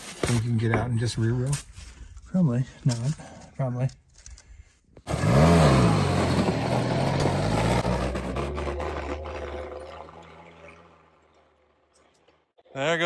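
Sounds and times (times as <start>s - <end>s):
vehicle engine revving and driving: 5.1s - 11.1s.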